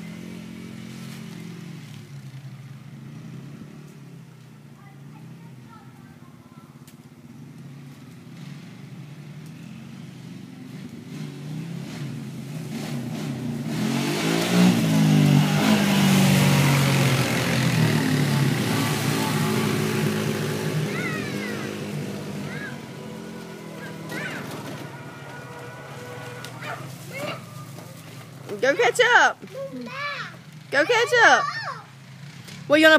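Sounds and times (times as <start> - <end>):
quad bike engine passing by: 0.0 - 32.9.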